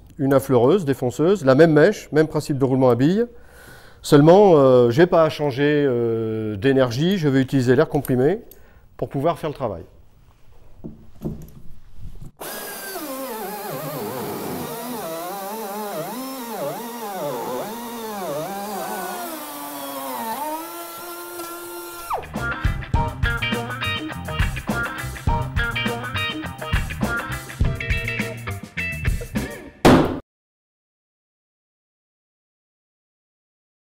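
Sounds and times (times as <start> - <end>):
router whining: 12.4 - 22.3
plucked guitar music: 22.2 - 29.4.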